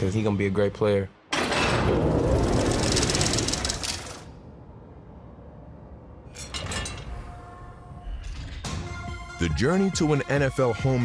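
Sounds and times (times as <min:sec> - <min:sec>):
fast mechanical rattle: 0:02.2 - 0:04.3.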